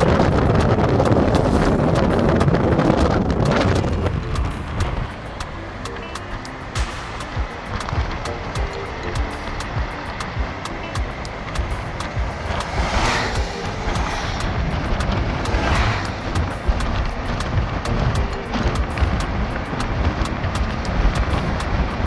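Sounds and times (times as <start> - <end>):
car road and wind noise: 0.0 - 22.0
music playing: 0.0 - 22.0.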